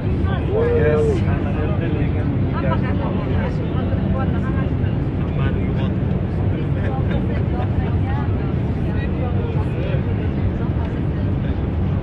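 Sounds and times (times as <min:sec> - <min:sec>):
airliner cabin drone: 0:00.0 - 0:12.0
people talking and laughing: 0:00.0 - 0:12.0.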